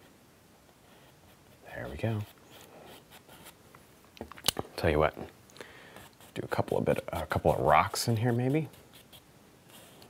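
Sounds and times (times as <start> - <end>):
brush rubbing on canvas: 6.1 - 10.0.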